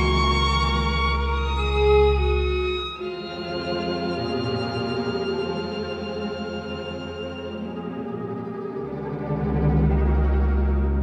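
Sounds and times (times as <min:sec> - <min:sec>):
cello and string orchestra: 0:00.0 - 0:11.0.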